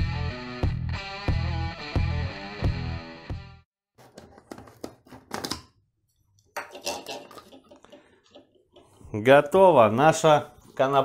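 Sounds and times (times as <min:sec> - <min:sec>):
background music: 0:00.0 - 0:03.6.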